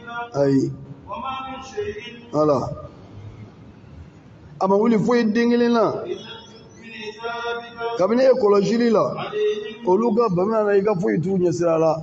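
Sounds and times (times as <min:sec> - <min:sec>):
man chanting: 0:00.0 - 0:03.0, 0:04.6 - 0:12.0.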